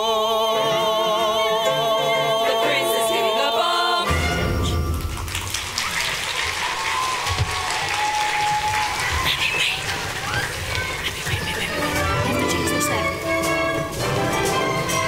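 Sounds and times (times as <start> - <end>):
audience applauding and cheering: 4.7 - 15.0.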